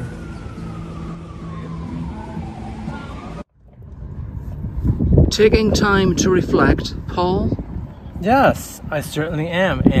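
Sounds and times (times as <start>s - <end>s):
siren winding down: 0.0s - 3.4s
traffic hum: 0.0s - 10.0s.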